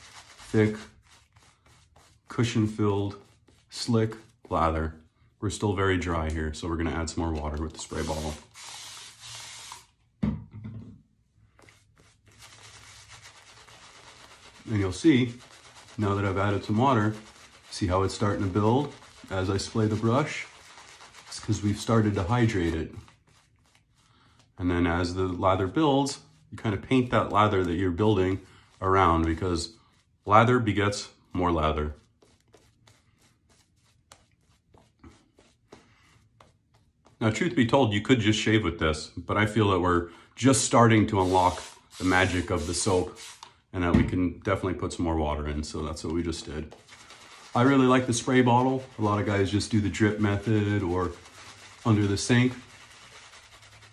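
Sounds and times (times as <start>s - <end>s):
shaving brush rubbing lather: 0.0s - 4.8s, 5.6s - 10.0s, 11.6s - 37.3s, 40.6s - 43.5s, 45.8s - 53.9s.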